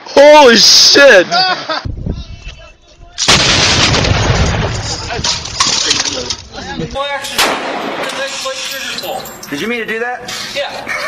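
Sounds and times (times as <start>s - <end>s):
heavy machine gun automatic fire: 3.3s - 5.0s.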